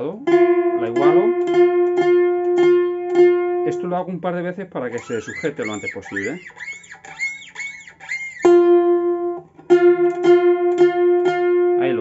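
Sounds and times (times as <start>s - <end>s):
plucked string note ringing: 0.0s - 4.0s, 5.0s - 12.0s.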